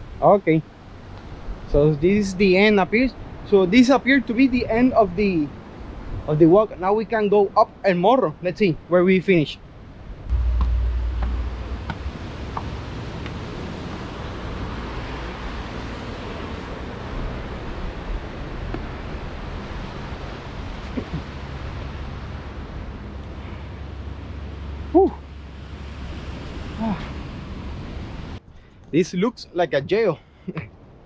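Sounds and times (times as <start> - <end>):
wind rumbling on microphone: 9.7 - 23.2
brief pitched sound: 10.3 - 12.6.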